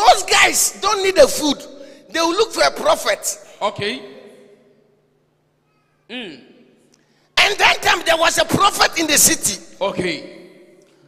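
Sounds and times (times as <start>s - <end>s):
man's amplified voice echoing: 0.0s - 4.8s, 6.1s - 11.0s.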